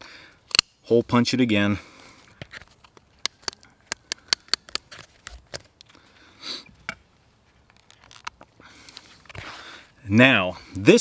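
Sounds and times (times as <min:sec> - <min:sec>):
leather hole punch clicks and taps: 0:03.2 - 0:04.8
person sniffing: 0:06.2 - 0:06.7.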